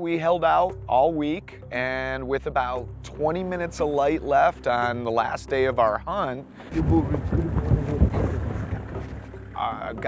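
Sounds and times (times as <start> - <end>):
wind buffeting microphone: 6.6 - 10.0.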